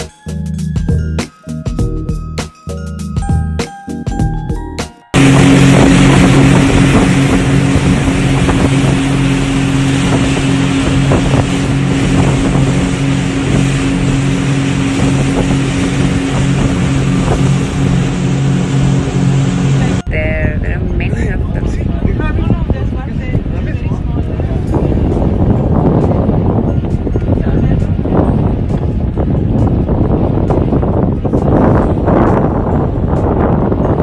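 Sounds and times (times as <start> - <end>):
motorboat engine drone: 0.0 - 34.0
water rushing along hull: 0.0 - 34.0
sea wash: 5.1 - 34.0
wind buffeting microphone: 5.1 - 34.0.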